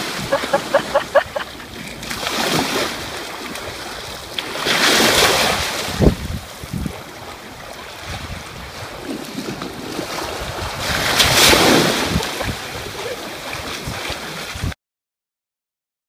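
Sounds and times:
sea waves washing onto shore: 0:00.0 - 0:14.8
wind buffeting microphone: 0:05.0 - 0:14.8.

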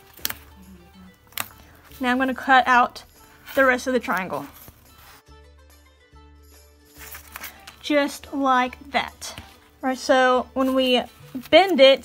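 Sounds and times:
soft background music: 0:00.0 - 0:12.0
woman speaking: 0:07.9 - 0:12.0.

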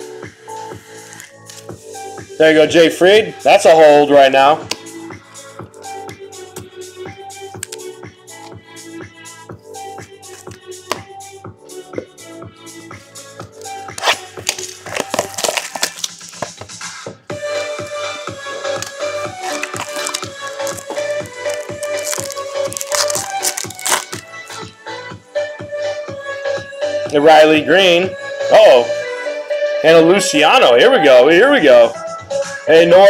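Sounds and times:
background music with held note: 0:00.0 - 0:33.0
plastic wrapper crinkling: 0:14.0 - 0:16.7, 0:17.5 - 0:24.6.

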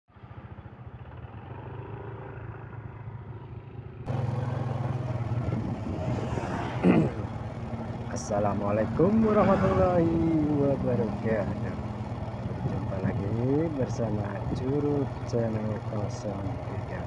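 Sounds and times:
scooter engines passing: 0:00.1 - 0:17.0.

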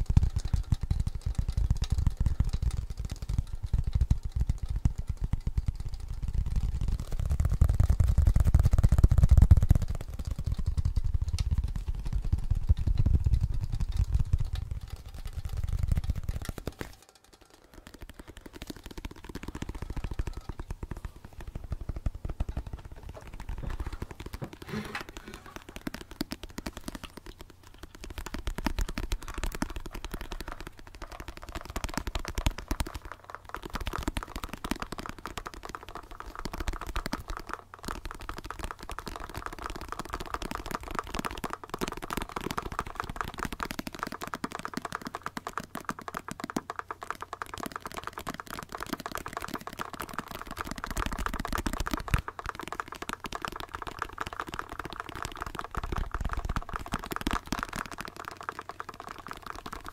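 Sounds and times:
fingertips tapping on plastic: 0:00.0 - 0:59.9.

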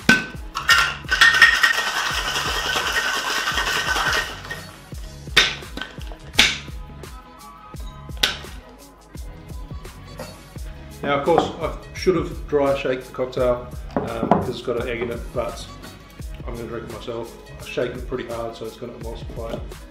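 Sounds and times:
chillhop music with steady beat: 0:00.0 - 0:19.9
ice rattling in cocktail shaker: 0:00.5 - 0:04.8.

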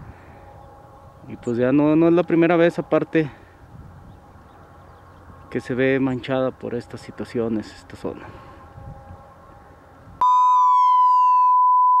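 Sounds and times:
loud electronic beep: 0:10.2 - 0:12.0
tone sliding downward: 0:10.2 - 0:12.0.

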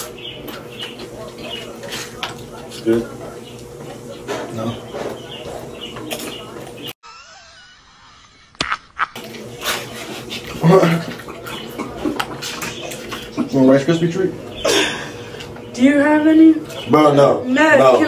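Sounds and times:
low indistinct talk: 0:00.0 - 0:06.9.

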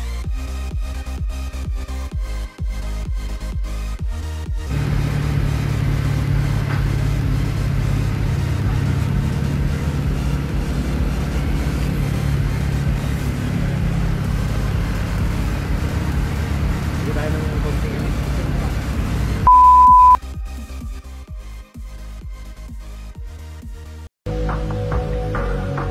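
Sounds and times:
vehicle engine rumbling: 0:04.7 - 0:20.2.

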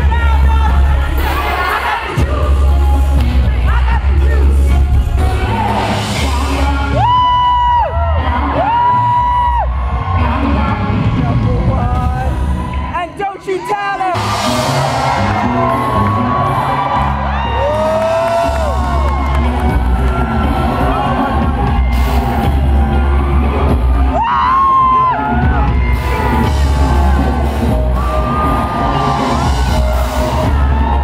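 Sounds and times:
live funk-pop band: 0:00.0 - 0:12.6, 0:14.1 - 0:31.0
person singing: 0:00.3 - 0:12.5
crowd whooping: 0:05.2 - 0:31.0
deep pulsing bass: 0:14.2 - 0:31.0.

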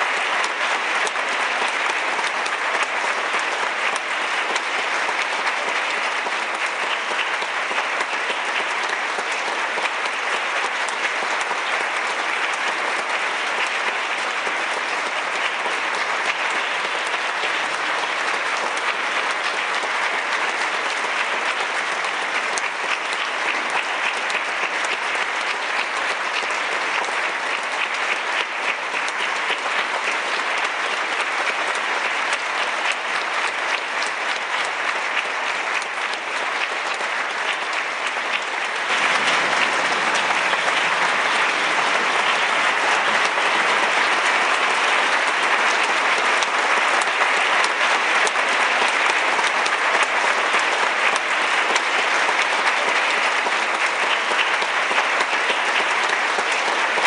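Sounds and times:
audience applauding: 0:00.0 - 0:57.0.

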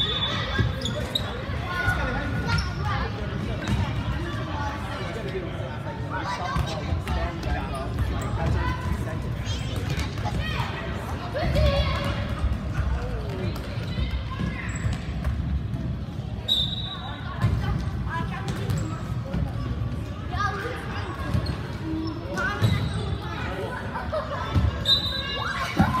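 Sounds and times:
chatter and shouts of people: 0:00.0 - 0:26.0.

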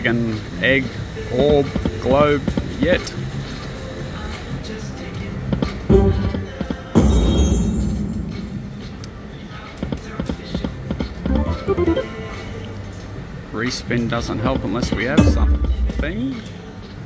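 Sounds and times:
slot machine reels spinning: 0:11.3 - 0:12.5
loud game sound effect: 0:11.3 - 0:12.6.

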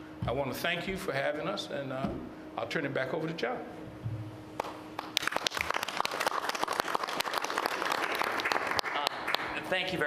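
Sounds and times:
audience applauding: 0:04.6 - 0:09.8.

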